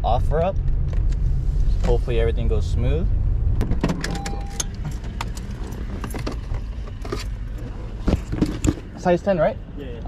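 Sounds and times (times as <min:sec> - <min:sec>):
car engine rumble and road noise: 0:00.0 - 0:10.0.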